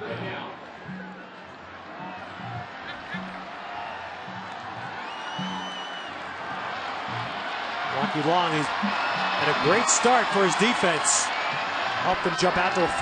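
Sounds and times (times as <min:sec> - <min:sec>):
stadium crowd noise: 0:00.0 - 0:13.0
high whistle: 0:05.0 - 0:06.1.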